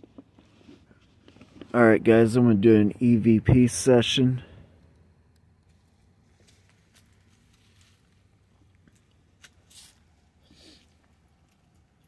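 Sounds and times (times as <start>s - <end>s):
short rustle: 5.8s - 8.5s, 9.3s - 11.8s.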